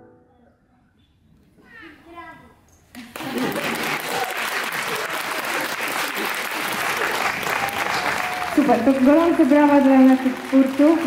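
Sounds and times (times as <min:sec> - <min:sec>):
performance music: 0:03.2 - 0:11.0.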